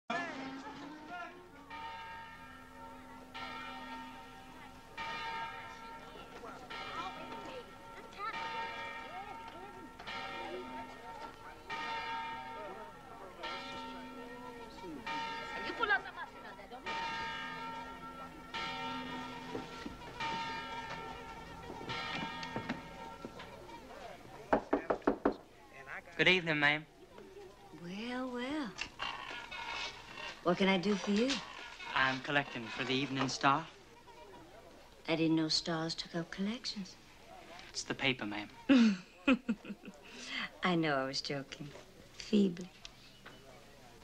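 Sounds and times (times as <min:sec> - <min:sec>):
church bell tolling: 0:00.2 - 0:24.3
knuckles knocking on a door: 0:24.5 - 0:25.4.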